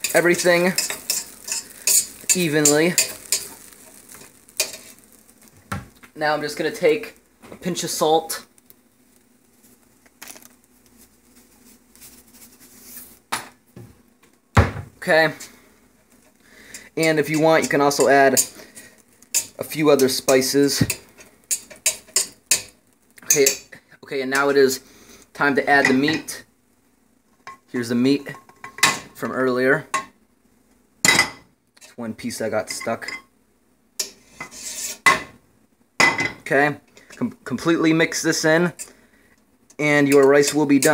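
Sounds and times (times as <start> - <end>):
metal spoon scraping cooking pot: 0.0 - 4.0, 34.0 - 35.1
soft rustling: 8.6 - 13.3.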